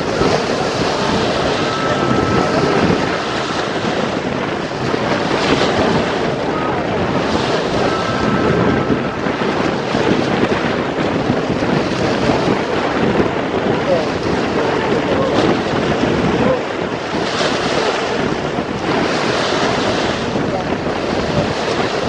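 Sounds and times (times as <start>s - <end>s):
waves splashing against concrete: 0.0s - 22.0s
wind buffeting microphone: 0.0s - 22.0s.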